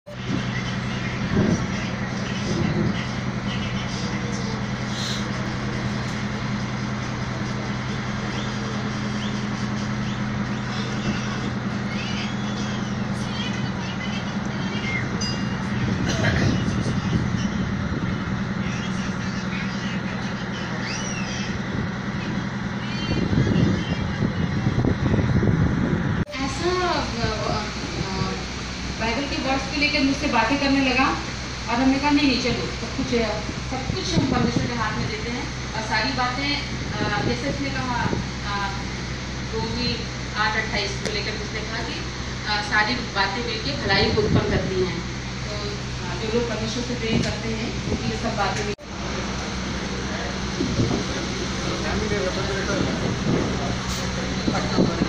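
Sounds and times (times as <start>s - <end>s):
boat engine humming: 0.0s - 55.0s
wind noise: 0.1s - 3.5s, 14.9s - 18.8s, 21.5s - 29.0s, 32.5s - 40.3s, 43.7s - 48.6s, 49.5s - 55.0s.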